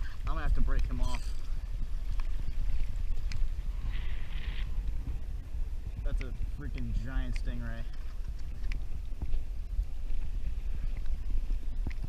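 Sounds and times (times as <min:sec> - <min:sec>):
wind and water rumble: 0:00.0 - 0:12.0
fishing reel drag rasping: 0:00.9 - 0:04.9.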